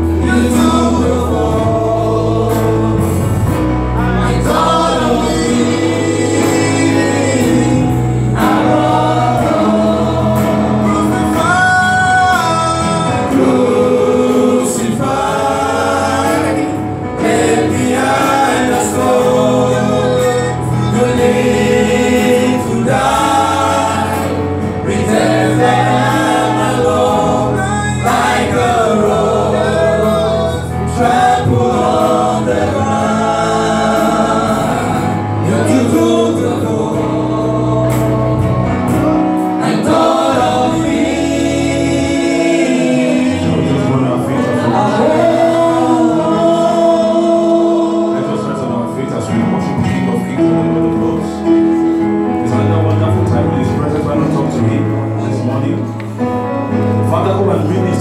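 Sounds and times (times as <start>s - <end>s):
group singing gospel: 0.0s - 58.0s
keyboard accompaniment: 0.0s - 58.0s.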